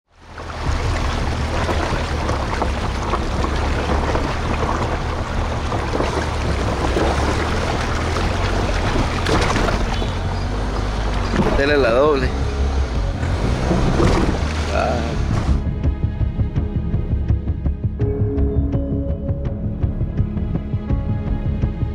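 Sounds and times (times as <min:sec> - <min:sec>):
low rumble: 0:00.1 - 0:21.9
water splashing around car tyres: 0:00.2 - 0:15.6.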